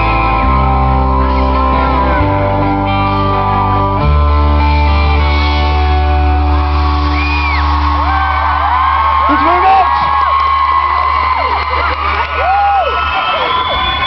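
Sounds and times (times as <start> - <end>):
audience screaming and cheering: 0.0 - 14.0.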